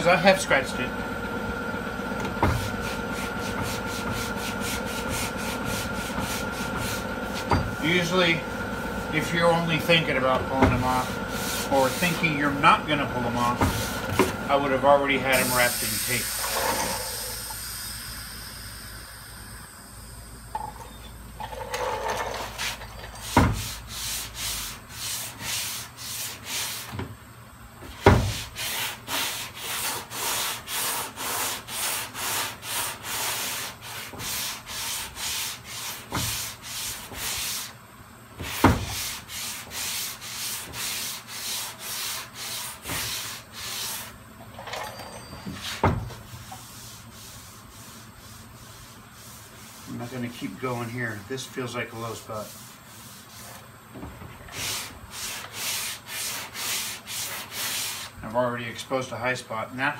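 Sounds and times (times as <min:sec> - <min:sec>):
sanding block rubbing on metal: 0:02.7 - 0:08.4, 0:09.0 - 0:13.5, 0:15.0 - 0:16.3, 0:22.4 - 0:26.9, 0:28.2 - 0:37.8, 0:38.4 - 0:44.2, 0:45.6 - 0:53.6, 0:54.5 - 0:58.2.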